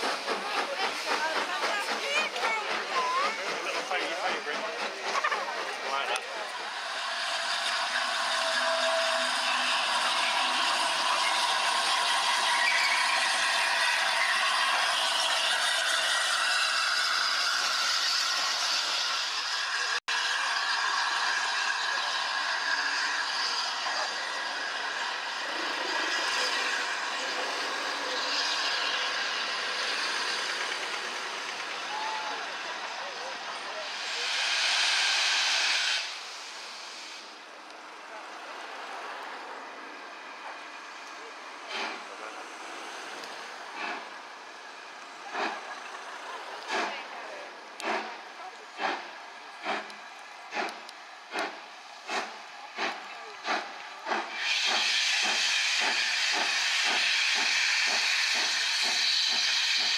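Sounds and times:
loud burst of steam hiss: 0.0s - 39.0s, 40.2s - 47.0s, 47.6s - 59.9s
steam locomotives running: 0.0s - 59.9s.

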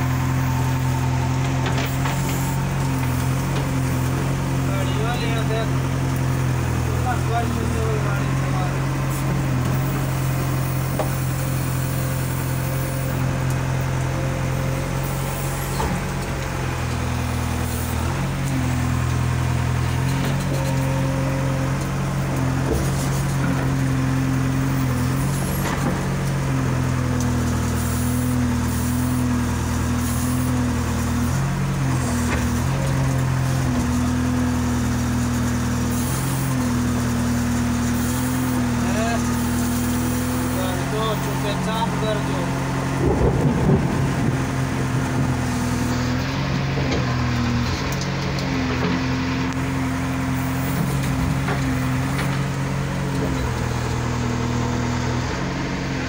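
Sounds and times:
diesel engine drone: 0.0s - 56.0s.

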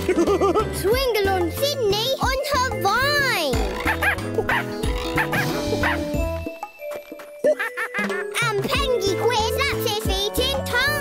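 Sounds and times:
children's tv background music: 0.0s - 11.0s.

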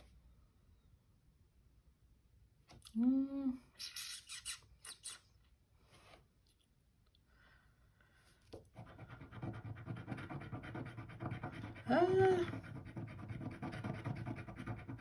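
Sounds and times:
tool scratching scratch card: 8.7s - 15.0s.

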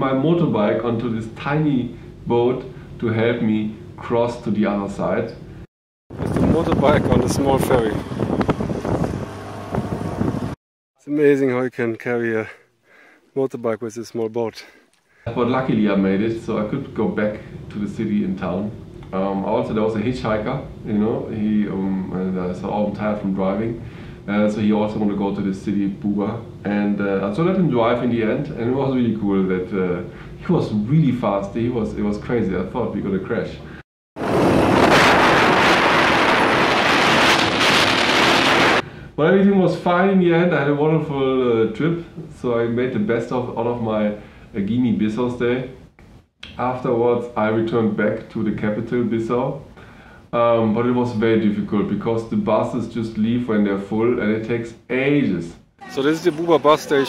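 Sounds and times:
wind on microphone: 6.1s - 10.6s
wind rushing over microphone: 6.1s - 10.6s, 34.2s - 38.8s.

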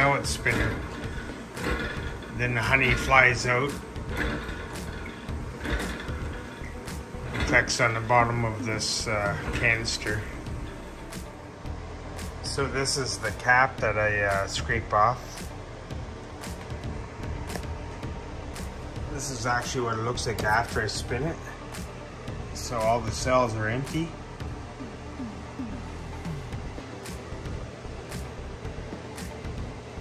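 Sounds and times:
hand-cranked extractor whirring: 0.0s - 11.3s
faint background music: 0.0s - 30.0s
low steady rumble: 0.0s - 30.0s.

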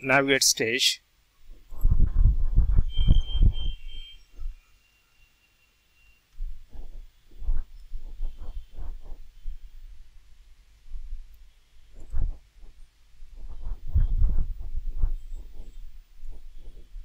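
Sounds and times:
muffled thumping on microphone: 1.5s - 4.5s, 6.4s - 9.8s, 11.9s - 17.0s.

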